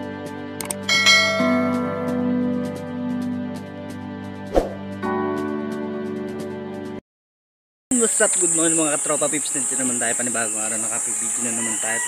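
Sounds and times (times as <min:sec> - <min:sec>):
bright bell-like chime: 0:00.9 - 0:01.8.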